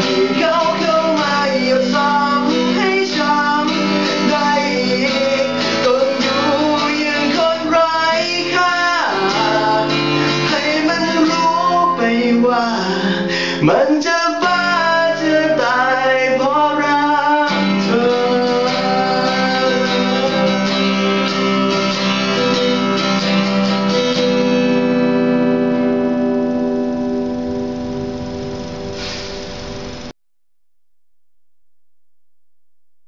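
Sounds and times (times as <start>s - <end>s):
man singing: 0.0s - 22.5s
acoustic guitar strumming: 0.0s - 30.2s.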